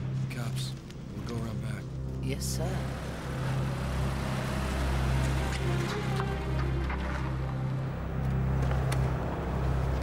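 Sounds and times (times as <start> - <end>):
car engine running: 2.4 - 10.0.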